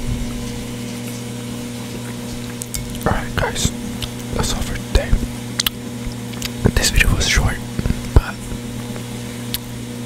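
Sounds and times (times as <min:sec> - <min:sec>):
steady low hum: 0:00.0 - 0:10.0
wet mouth clicks: 0:02.5 - 0:06.7.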